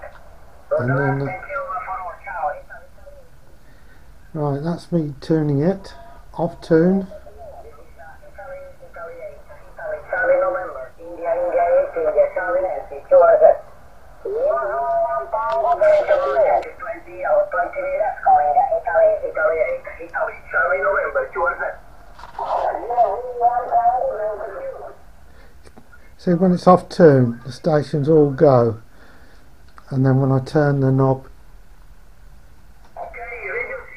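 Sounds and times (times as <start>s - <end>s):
thin radio voice from speaker: 0.0s - 3.4s, 5.8s - 13.6s, 14.2s - 21.8s, 22.4s - 25.0s, 33.0s - 33.9s
faint radio hiss: 0.0s - 33.9s.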